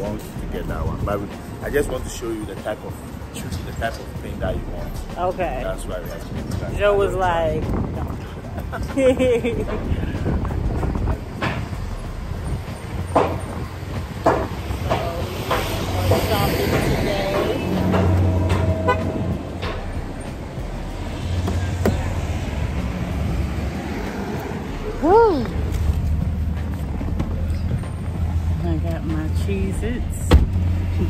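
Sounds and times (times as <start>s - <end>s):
vehicle engines rumbling: 0.0s - 31.0s.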